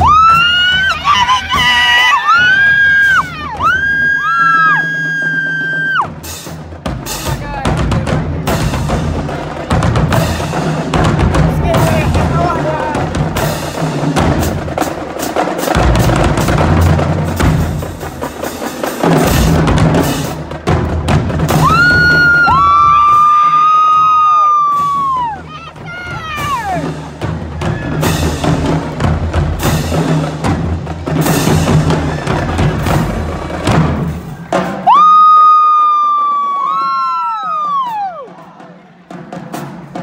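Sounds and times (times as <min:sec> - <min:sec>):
marching drumline playing: 0:00.0 - 0:40.0.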